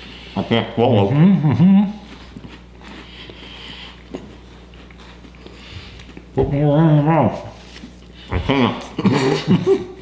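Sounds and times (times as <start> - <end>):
chewing dry crackers: 1.1 - 6.4.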